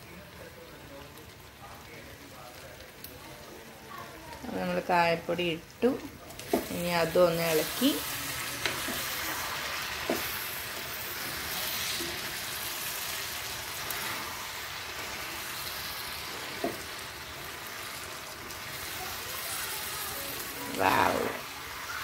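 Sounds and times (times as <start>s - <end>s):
fruit sizzling in oil: 0.0s - 22.0s.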